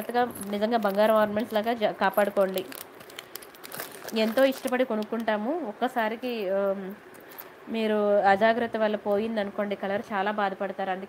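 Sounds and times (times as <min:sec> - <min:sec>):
person speaking: 0:00.0 - 0:03.0, 0:03.8 - 0:07.1
plastic packets crinkling: 0:00.0 - 0:05.4, 0:07.1 - 0:07.6.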